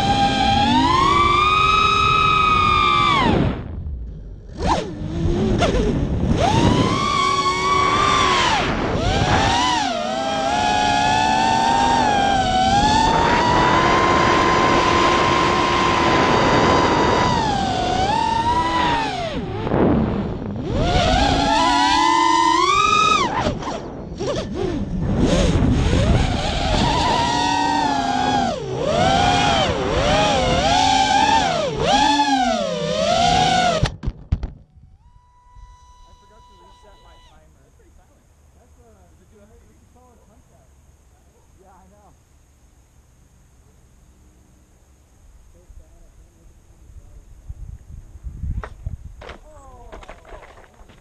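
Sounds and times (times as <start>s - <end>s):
quadcopter motors whining: 0.0s - 34.0s, 34.7s - 40.6s.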